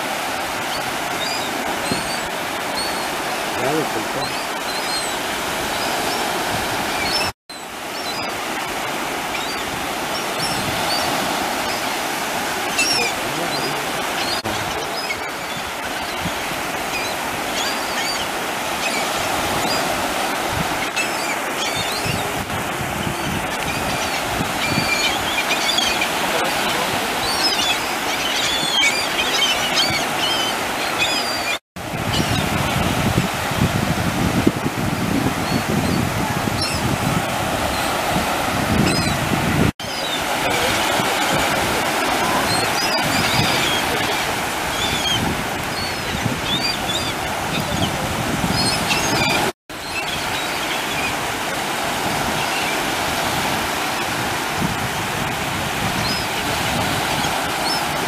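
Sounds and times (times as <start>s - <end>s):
gulls crying: 0.0s - 32.8s, 39.8s - 51.6s
sea waves and surf: 0.0s - 58.0s.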